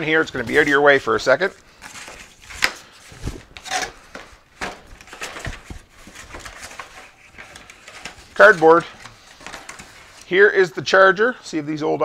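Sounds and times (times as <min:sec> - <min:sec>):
cardboard rustling and scraping: 0:00.1 - 0:10.4.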